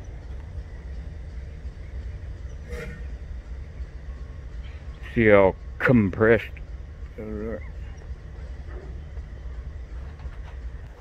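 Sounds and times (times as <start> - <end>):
freight train rumbling: 0.0 - 11.0.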